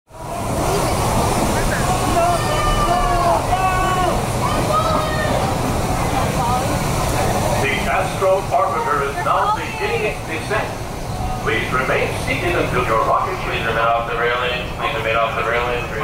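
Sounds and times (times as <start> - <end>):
people talking indistinctly: 0.2 - 16.0
steady rushing noise: 0.2 - 16.0.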